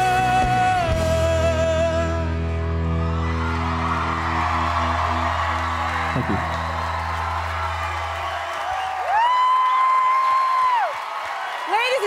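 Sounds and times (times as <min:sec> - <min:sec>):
audience cheering and applauding: 0:02.6 - 0:12.0.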